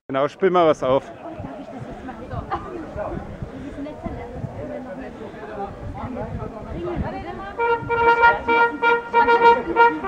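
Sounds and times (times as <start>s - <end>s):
wind band playing punchy notes: 7.5s - 10.0s.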